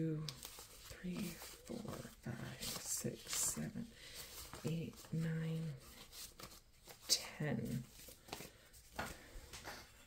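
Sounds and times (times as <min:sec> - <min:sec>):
paper bills rustling: 0:00.3 - 0:09.3.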